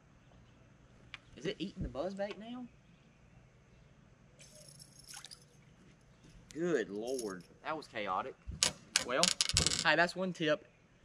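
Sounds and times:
faint rattling hiss: 3.7 - 10.7.

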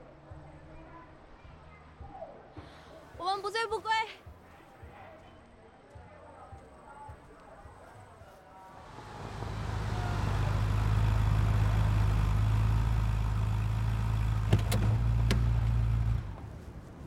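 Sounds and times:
sports car engine humming: 8.7 - 17.0.

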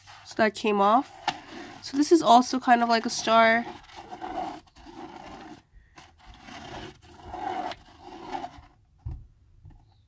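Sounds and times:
pen scratching on paper: 0.0 - 8.7.

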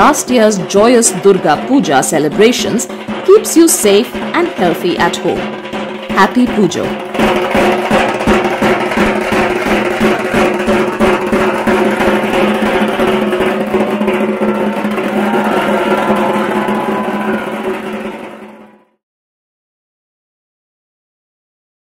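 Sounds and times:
rapid steady drumbeats: 0.0 - 18.9.

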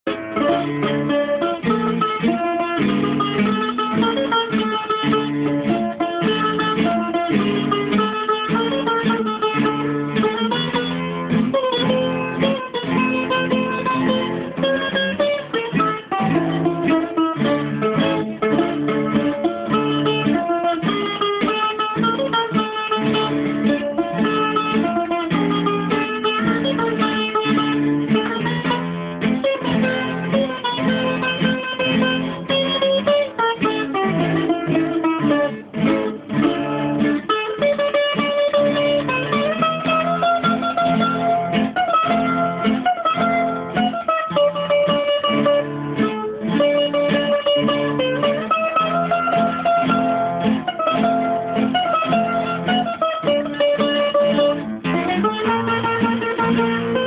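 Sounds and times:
bouzouki music: 0.0 - 57.0.

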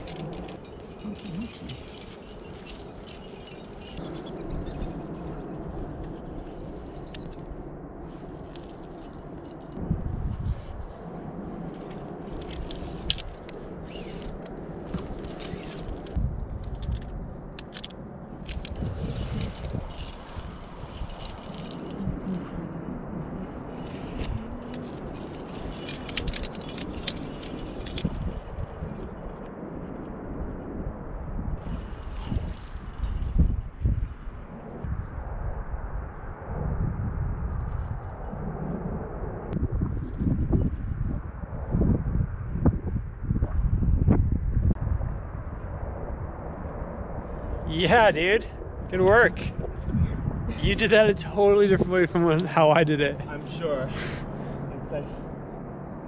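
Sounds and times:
metal climbing gear clinking: 0.0 - 9.8, 11.7 - 34.9
low wind rumble on microphone: 0.0 - 56.0
rope sliding: 14.9 - 16.2.

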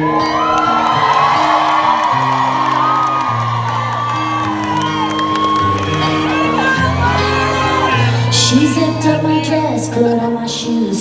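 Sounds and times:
crowd whooping and cheering: 0.0 - 9.8
live band playing instrumental: 0.0 - 9.8
acoustic guitar: 0.0 - 11.0.

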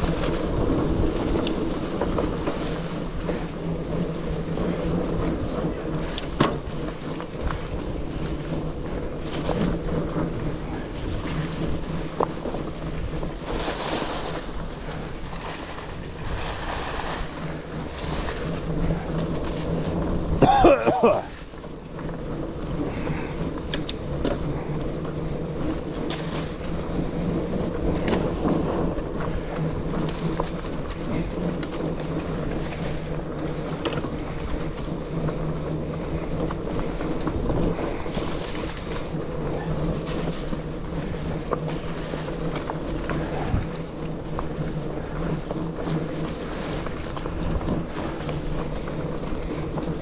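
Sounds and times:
bike clicks and rattles: 0.0 - 50.0
bike tyres rolling on trail: 0.0 - 50.0
leaves crunching: 13.2 - 21.4.

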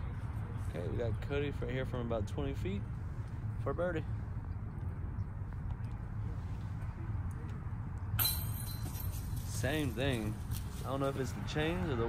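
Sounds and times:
disc rattling metal chains: 8.2 - 10.4.

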